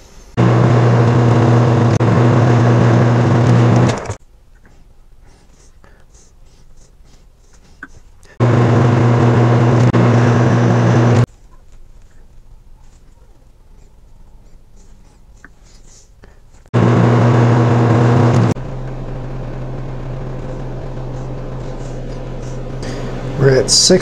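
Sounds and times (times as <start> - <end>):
metal lathe humming: 0.4 - 4.2, 8.4 - 11.3, 16.8 - 24.0.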